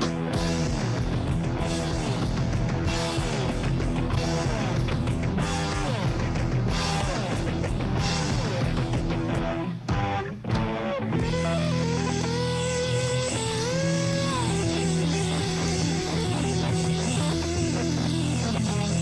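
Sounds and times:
drum strokes: 0:00.0 - 0:12.4
gliding guitar note: 0:00.0 - 0:19.0
live hard rock band: 0:00.0 - 0:19.0.

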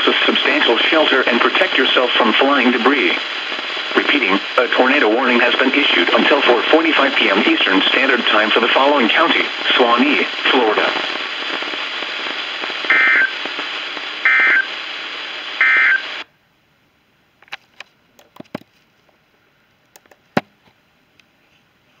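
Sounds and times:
radio static hiss: 0:00.0 - 0:16.3.

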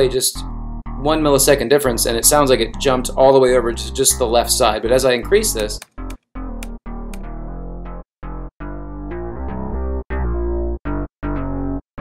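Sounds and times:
bass line with delay effect: 0:00.0 - 0:12.0.

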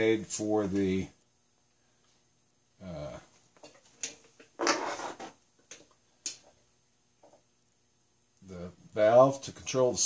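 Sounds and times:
scratchy noise: 0:04.6 - 0:05.4.

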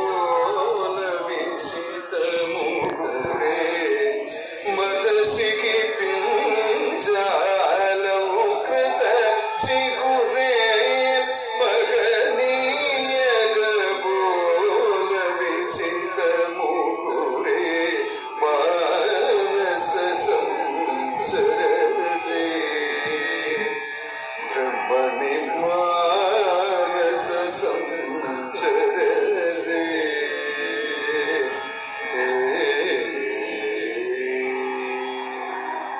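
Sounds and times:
man singing long notes: 0:00.0 - 0:35.9
music: 0:00.0 - 0:35.9.

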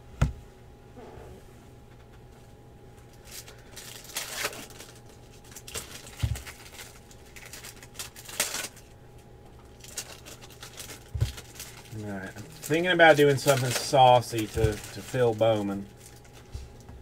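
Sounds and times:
foil wrappers crinkling and tearing: 0:03.1 - 0:09.0, 0:09.6 - 0:16.9
cards being handled: 0:12.6 - 0:16.5.

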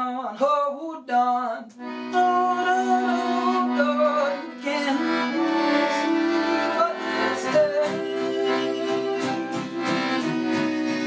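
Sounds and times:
accordion: 0:01.6 - 0:11.0
folk trio playing: 0:01.8 - 0:11.0.

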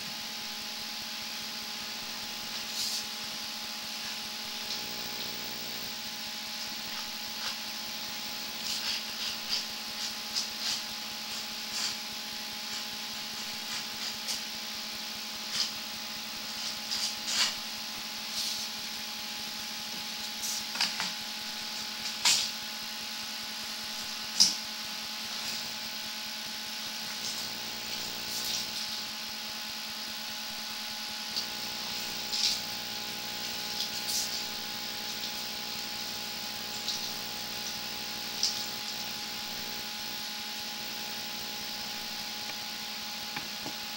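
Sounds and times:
steady electrical hum: 0:00.0 - 0:43.9
high hiss: 0:02.3 - 0:03.3.

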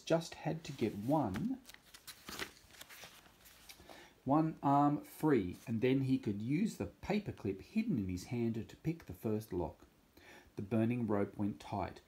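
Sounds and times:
book page turning: 0:00.6 - 0:03.9.

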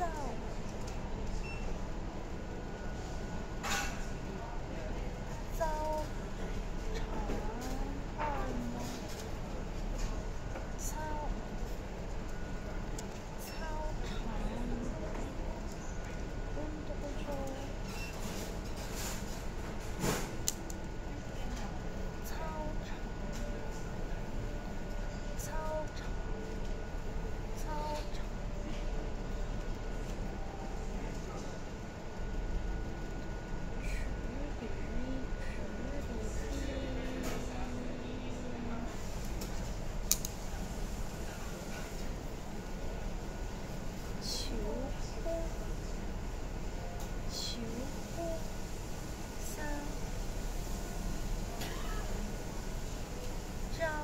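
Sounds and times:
room hum: 0:00.0 - 0:54.0
faint indistinct voices: 0:33.9 - 0:45.9.

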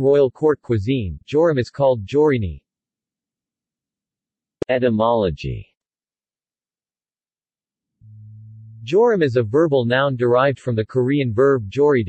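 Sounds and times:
synthesized male narration: 0:00.0 - 0:02.6, 0:04.6 - 0:05.7, 0:08.8 - 0:12.0
steady low tone: 0:08.0 - 0:09.8.

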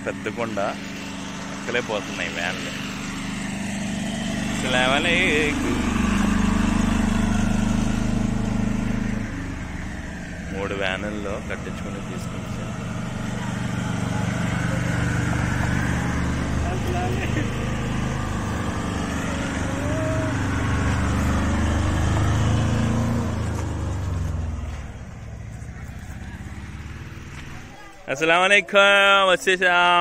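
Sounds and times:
van engine driving past: 0:00.0 - 0:29.9.

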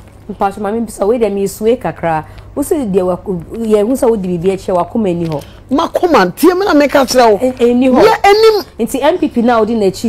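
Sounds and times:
woman talking loudly: 0:05.7 - 0:10.0.

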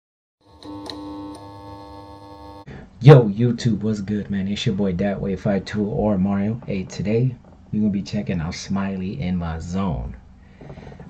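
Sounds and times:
held synthesizer chord: 0:00.4 - 0:02.7.

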